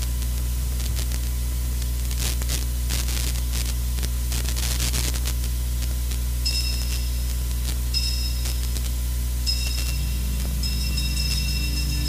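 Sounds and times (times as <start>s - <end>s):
low electrical hum: 0.0s - 12.0s
static hiss: 0.0s - 12.0s
high ringing tone: 6.4s - 7.3s, 7.9s - 8.6s, 9.4s - 12.0s.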